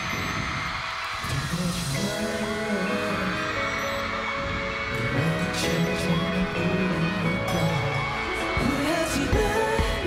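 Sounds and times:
live pop music: 0:00.0 - 0:10.0.

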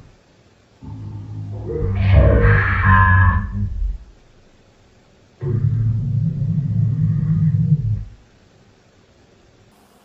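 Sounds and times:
distorted warbling electronic sound: 0:00.8 - 0:04.1.

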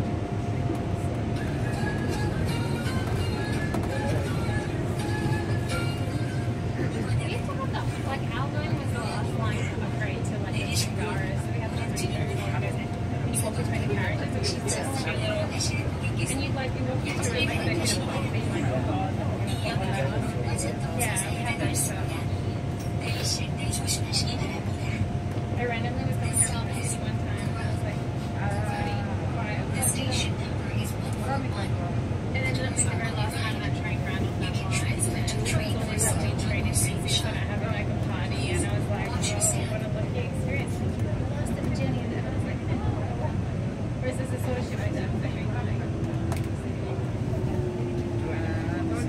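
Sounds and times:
people talking: 0:00.0 - 0:04.7, 0:05.4 - 0:49.0
electric train rumble: 0:00.0 - 0:49.0.

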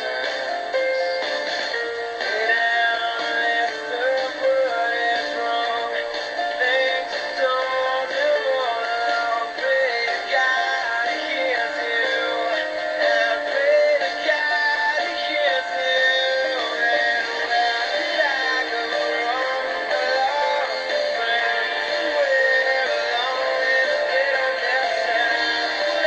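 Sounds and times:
synthetic melody background music: 0:00.0 - 0:26.0.

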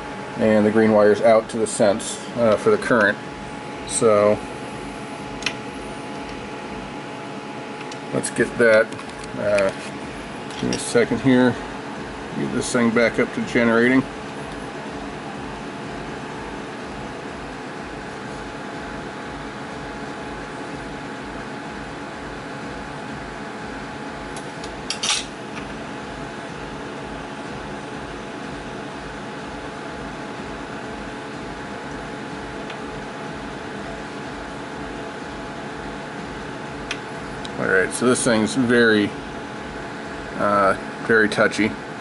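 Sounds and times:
machine hum with low throb: 0:00.0 - 0:42.0.

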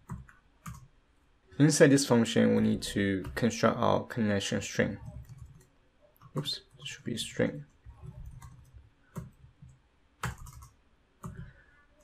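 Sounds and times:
keyboard keystroke clicks: 0:10.2 - 0:11.4.

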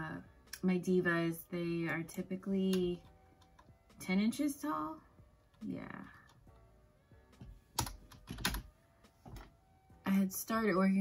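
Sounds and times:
keyboard keystrokes: 0:07.8 - 0:08.7.

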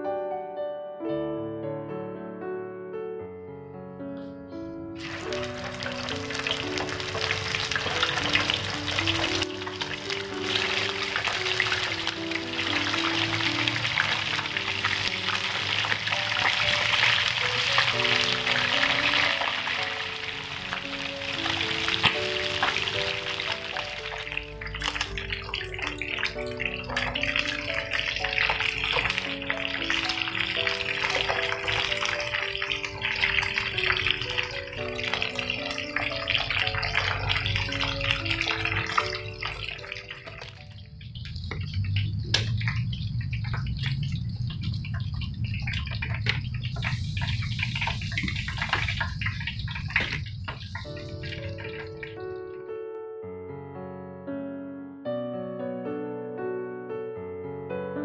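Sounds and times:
background music: 0:00.0 - 0:42.6, 0:50.8 - 0:58.0
food sizzling in frying pan: 0:05.0 - 0:52.4.

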